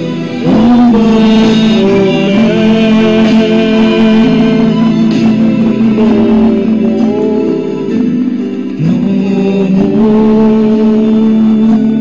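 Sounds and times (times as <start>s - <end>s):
chant-like sung prayer: 0.3s - 8.1s.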